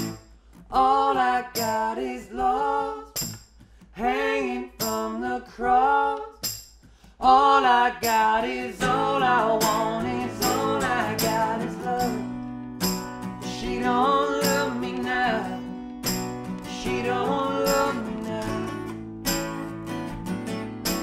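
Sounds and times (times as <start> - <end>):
acoustic guitars strumming: 0.0 - 6.0, 6.8 - 21.0
man singing: 0.7 - 3.2, 4.0 - 6.4, 7.2 - 12.4, 13.4 - 15.7, 16.7 - 18.9.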